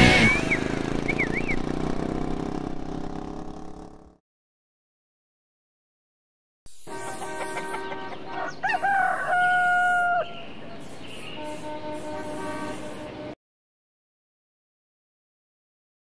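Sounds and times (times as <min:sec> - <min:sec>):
rooster crowing: 0:07.0 - 0:10.5.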